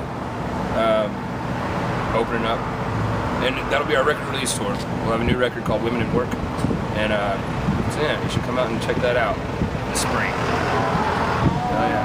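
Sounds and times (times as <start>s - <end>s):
street traffic rumble: 0.0s - 12.0s
vehicle engine drone: 0.0s - 12.0s.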